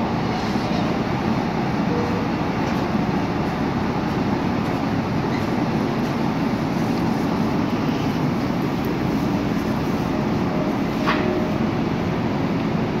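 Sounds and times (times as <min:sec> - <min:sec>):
electric train rumble: 0:00.0 - 0:13.0.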